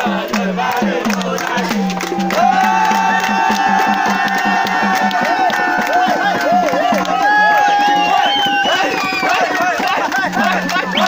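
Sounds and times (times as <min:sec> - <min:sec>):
crowd noise: 0:00.0 - 0:11.0
folk dance music: 0:00.0 - 0:11.0
quick drum beat: 0:00.0 - 0:11.0.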